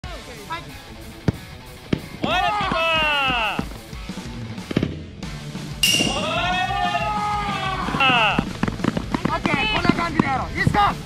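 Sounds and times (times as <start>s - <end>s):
musical sound effect: 5.8s - 6.5s.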